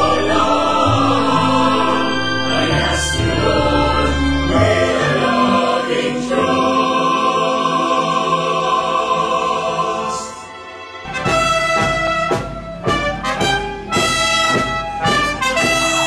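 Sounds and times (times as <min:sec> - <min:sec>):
choir singing a hymn: 0:00.0 - 0:11.5.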